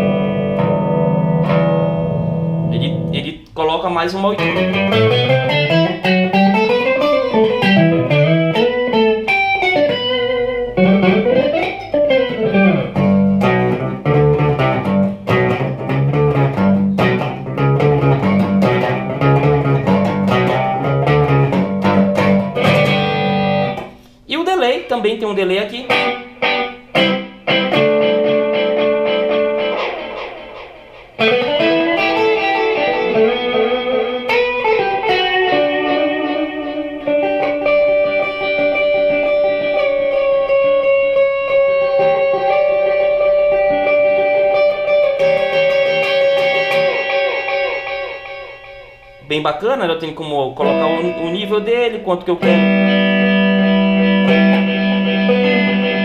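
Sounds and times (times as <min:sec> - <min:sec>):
electric guitar with modulation effect: 0:00.0 - 0:03.6, 0:04.2 - 0:24.3, 0:25.7 - 0:49.4, 0:50.0 - 0:56.0.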